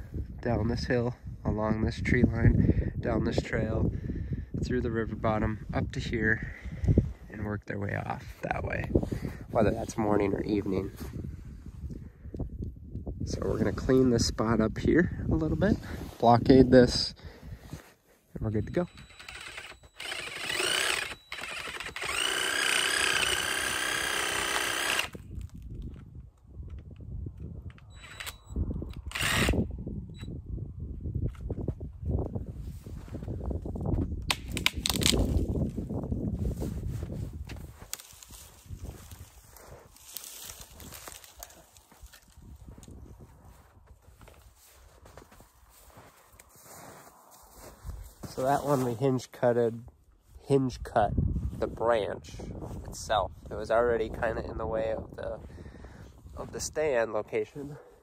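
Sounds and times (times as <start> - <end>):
power saw motor running: 18.9 - 25.2, 28.0 - 28.4, 29.0 - 29.6.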